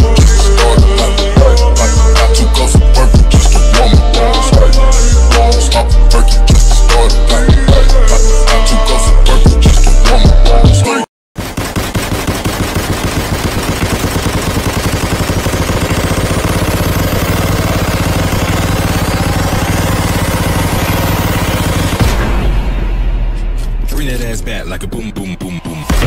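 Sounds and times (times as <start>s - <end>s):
rapid sharp percussive hits: 11.4s - 23.4s.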